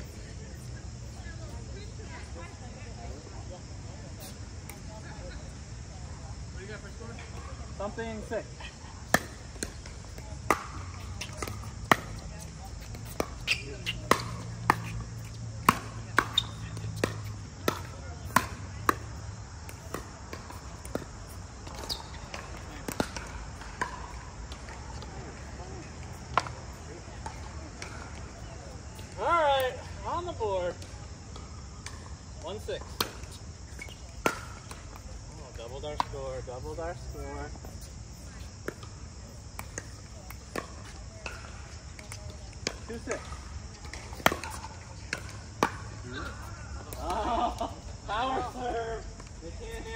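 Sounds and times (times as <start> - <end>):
ball bouncing on hard court: 9.1 - 19.1, 19.7 - 24.7, 32.8 - 35.0, 42.0 - 45.9.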